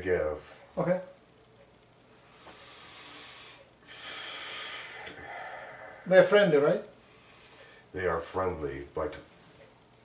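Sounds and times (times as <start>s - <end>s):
man breathing: 2.1s - 6.2s, 7.0s - 7.9s.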